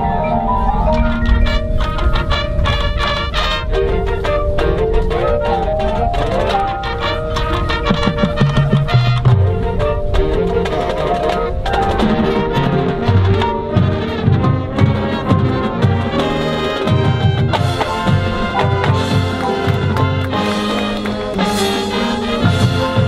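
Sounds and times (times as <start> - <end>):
marching band playing: 0.0 - 23.0
quick low drum hits: 11.9 - 20.4.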